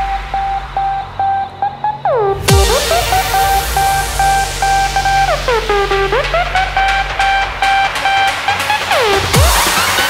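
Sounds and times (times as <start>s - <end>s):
repeated synth note with blips: 0.0s - 9.3s.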